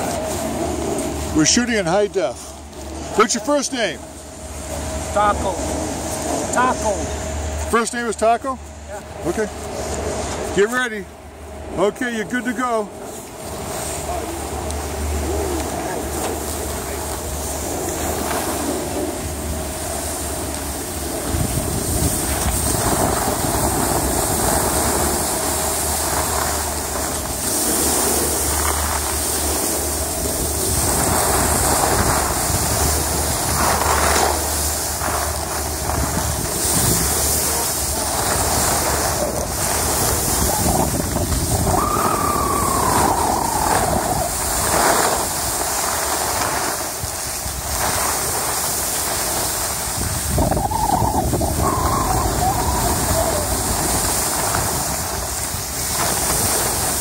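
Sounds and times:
skis scraping over snow: 0:00.0 - 0:11.0, 0:11.7 - 0:57.0
wind buffeting microphone: 0:12.8 - 0:57.0.

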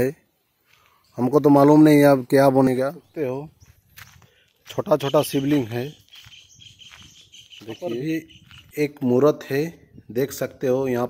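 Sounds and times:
insects chirring: 0:03.5 - 0:08.8
man's voice: 0:04.6 - 0:06.1, 0:07.6 - 0:11.0.

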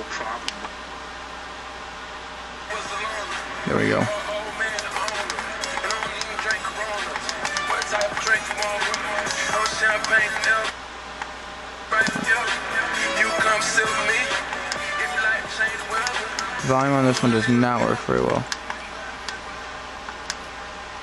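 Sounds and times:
radio music with vocals: 0:00.0 - 0:00.8, 0:02.6 - 0:10.8, 0:11.8 - 0:19.8.

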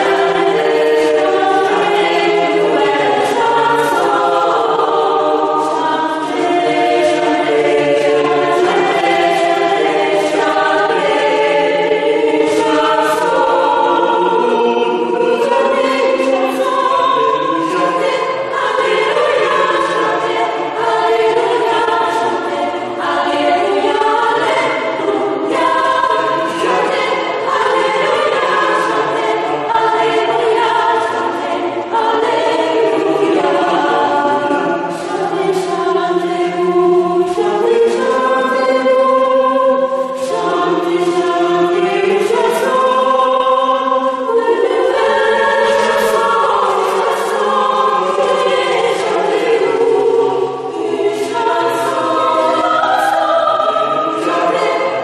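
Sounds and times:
choir singing a cappella: 0:00.0 - 0:55.0.

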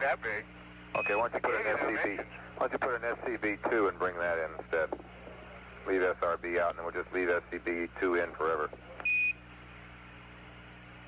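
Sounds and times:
faint radio hiss and hum: 0:00.0 - 0:11.0
short high radio beep: 0:01.0 - 0:01.3.

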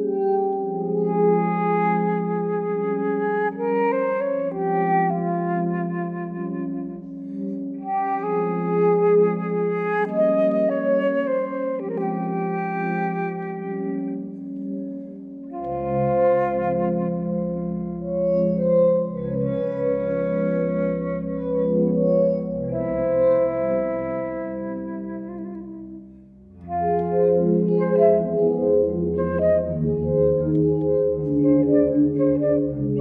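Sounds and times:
flute playing slow melody: 0:00.0 - 0:33.0.

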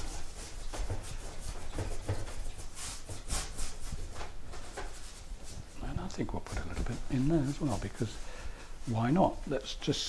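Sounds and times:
paintbrush scrubbing canvas: 0:00.0 - 0:08.2.

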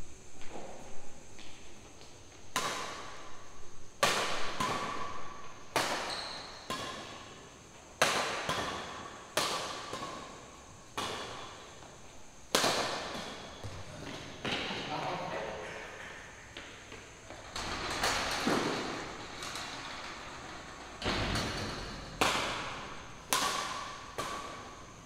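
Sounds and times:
badminton racket hitting shuttlecock: 0:08.0 - 0:10.4, 0:11.0 - 0:11.7, 0:12.5 - 0:13.6, 0:22.2 - 0:24.9.

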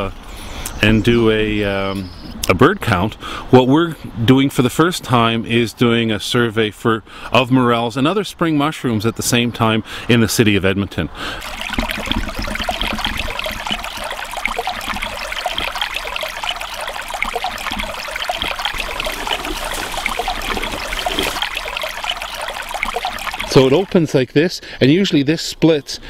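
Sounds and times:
water trickling over rocks: 0:11.4 - 0:24.2.

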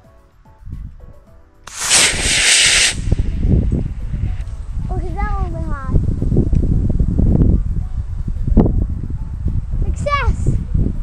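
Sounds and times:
rocket motor hissing whoosh: 0:01.7 - 0:04.6.

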